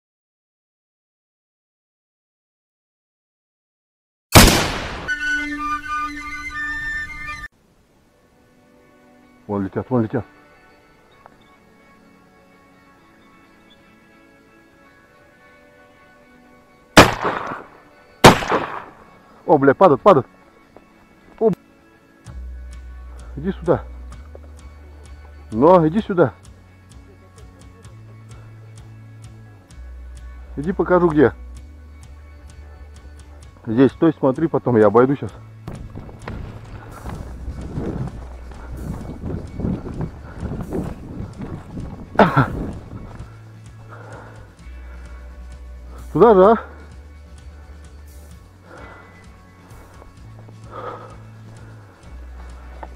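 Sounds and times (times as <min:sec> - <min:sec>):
shotgun shot: 0:04.3 - 0:05.2, 0:17.0 - 0:19.0
footsteps crunching dry grass: 0:35.7 - 0:43.4.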